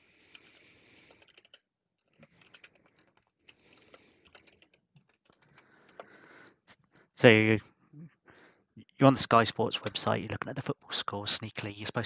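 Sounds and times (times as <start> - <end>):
typing on computer keyboard: 1.1 - 6.2.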